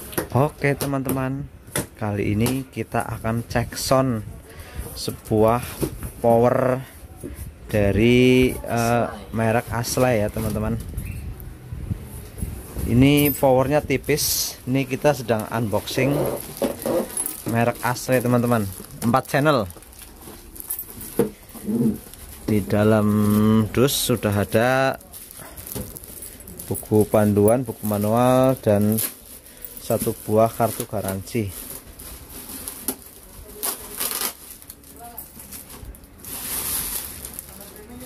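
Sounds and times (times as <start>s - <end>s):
plastic wrapping rustling: 12.0s - 38.0s
packaging knocks and crackles: 15.1s - 38.0s.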